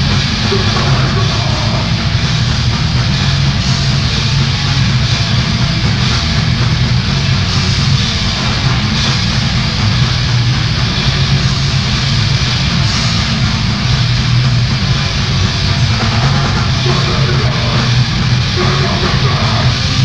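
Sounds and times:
distorted electric guitars: 0.0s - 20.0s
drums: 0.0s - 20.0s.

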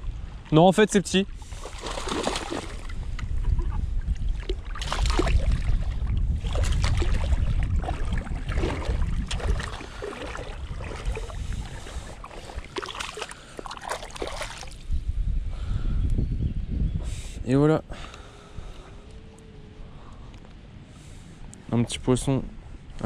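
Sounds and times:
wind rumble on microphone: 0.0s - 23.0s
fish splashing in water: 1.4s - 2.9s, 4.4s - 5.8s, 6.4s - 14.8s.

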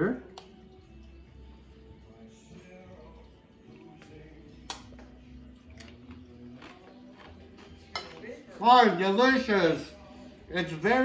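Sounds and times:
chewing crunches: 5.7s - 7.7s.

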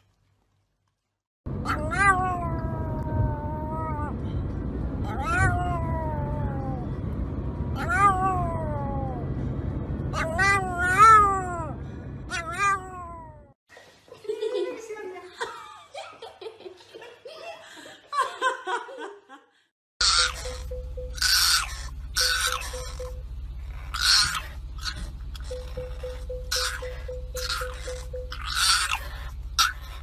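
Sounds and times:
car rumbling on road: 1.5s - 12.3s, 20.0s - 30.0s.

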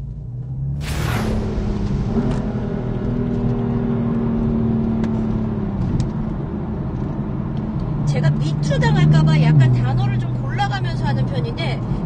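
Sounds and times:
car engine under power: 0.2s - 10.6s
short whoosh: 0.8s - 5.0s.

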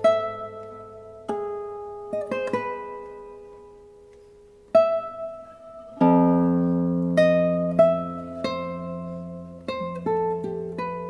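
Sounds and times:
classical guitars playing: 0.0s - 11.0s.

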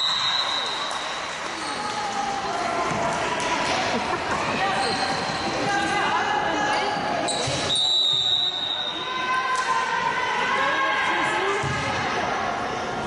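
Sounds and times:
voices calling out in echoing hall: 0.0s - 13.0s.

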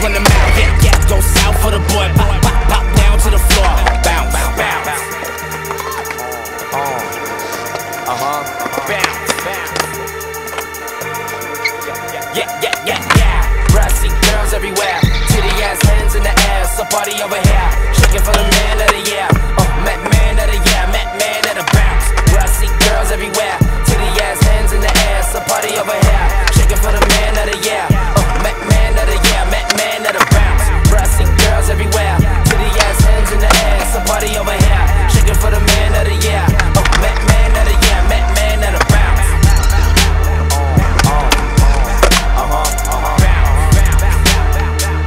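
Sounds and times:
hip-hop music: 0.0s - 45.0s
skateboard wheels rolling on concrete: 0.0s - 45.0s
skateboard clacks: 5.2s - 6.3s, 7.4s - 10.7s, 14.8s - 31.6s, 32.4s - 34.2s, 35.8s - 38.1s, 40.8s - 42.3s.

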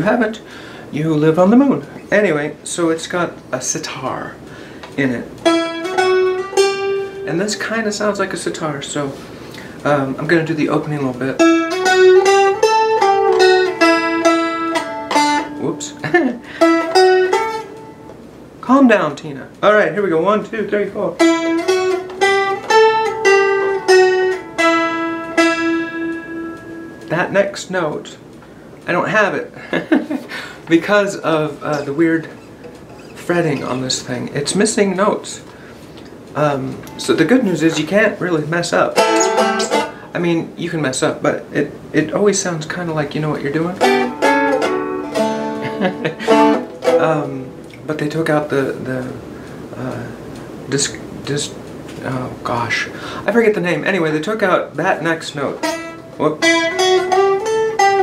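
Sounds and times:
plucked string instrument notes: 3.0s - 19.6s, 20.2s - 29.2s, 30.6s - 58.0s
plucked fretted dulcimer notes: 5.4s - 7.7s, 10.3s - 18.1s, 21.2s - 27.4s, 38.8s - 40.2s, 43.5s - 47.8s, 55.1s - 58.0s.

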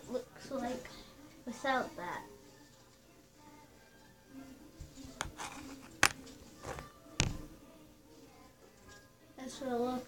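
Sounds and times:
faint background music: 0.0s - 10.0s
knocks on tablet: 7.2s - 7.4s.

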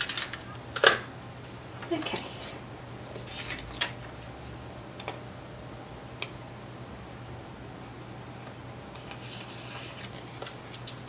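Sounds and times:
paper cards rustling: 0.0s - 0.9s, 3.2s - 4.1s, 8.9s - 11.0s.

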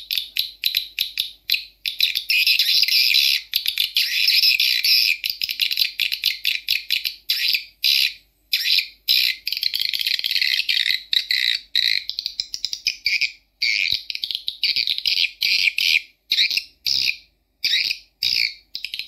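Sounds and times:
high chirping bird trills: 0.0s - 19.0s.

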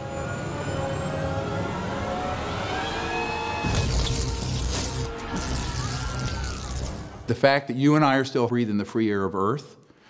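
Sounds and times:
mechanical drone: 0.0s - 7.3s.

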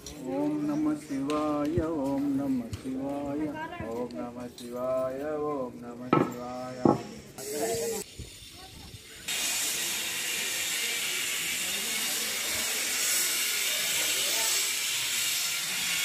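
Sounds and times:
steady hiss: 6.3s - 16.0s.

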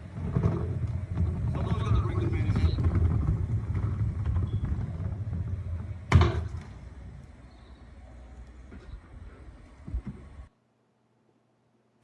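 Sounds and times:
wheelie bin thud on paving: 0.2s - 6.8s.

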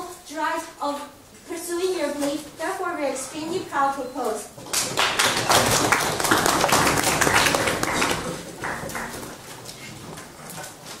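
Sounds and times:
audience applauding: 4.7s - 9.4s.

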